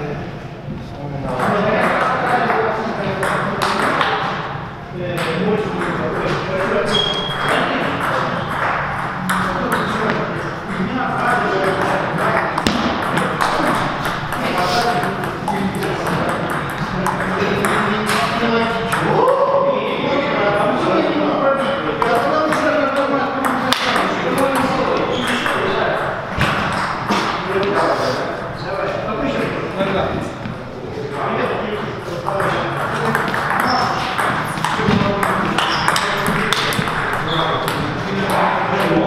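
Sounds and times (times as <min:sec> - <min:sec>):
people talking: 0:00.0 - 0:39.0
table tennis balls clicking: 0:11.1 - 0:19.2, 0:32.3 - 0:39.0.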